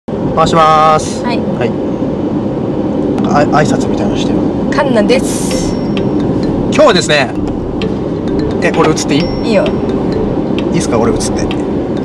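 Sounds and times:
road and engine noise: 0:00.1 - 0:12.0
people talking: 0:03.2 - 0:05.8, 0:06.7 - 0:07.4, 0:08.6 - 0:09.8, 0:10.7 - 0:11.6.

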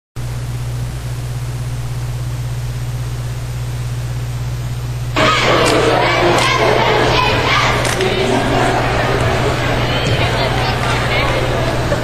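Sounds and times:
low electrical hum: 0:00.2 - 0:12.0
crowd noise and voices: 0:05.2 - 0:12.0.

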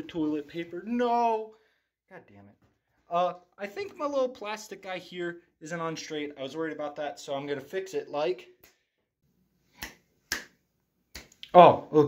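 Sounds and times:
finger snaps: 0:08.6 - 0:08.9, 0:09.7 - 0:11.5.

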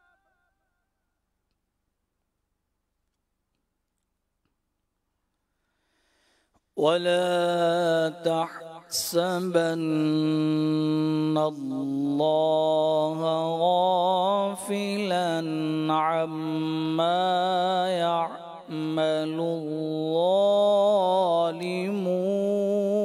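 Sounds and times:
man reciting melodically: 0:06.8 - 0:23.0.

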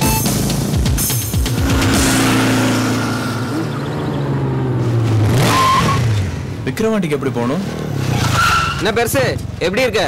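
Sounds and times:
motorcycle engine: 0:00.1 - 0:08.2
tyre squeal: 0:05.4 - 0:06.2, 0:08.1 - 0:09.0.

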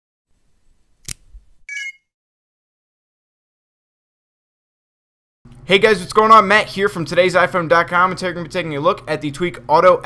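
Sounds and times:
sharp click: 0:01.0 - 0:01.9.

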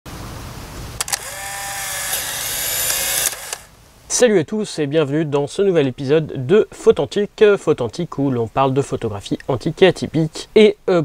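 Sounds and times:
camera motor whirring: 0:01.0 - 0:03.7
camera shutter click: 0:01.0 - 0:03.7.

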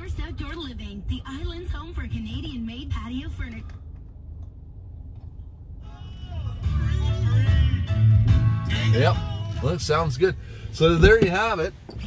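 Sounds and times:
car stereo music with heavy bass: 0:05.8 - 0:12.0.

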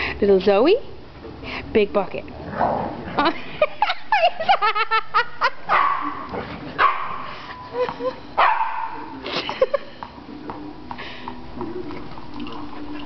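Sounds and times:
dogs barking and yipping: 0:05.6 - 0:07.7, 0:08.4 - 0:09.1.

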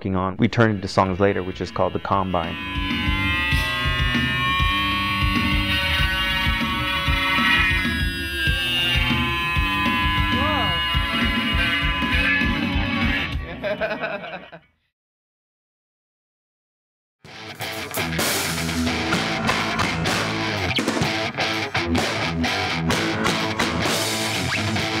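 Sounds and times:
rock music: 0:00.7 - 0:13.9, 0:17.3 - 0:25.0.

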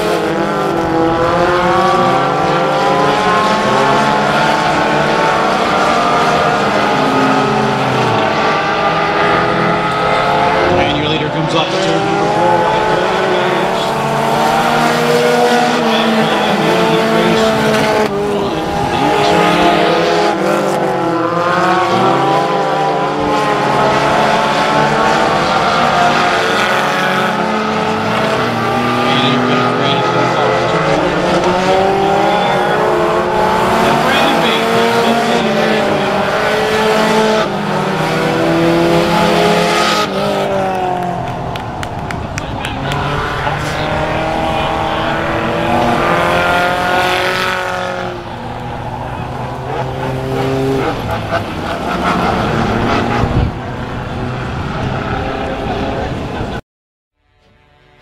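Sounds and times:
race car engines revving: 0:00.0 - 0:56.6, 0:57.2 - 0:58.0.

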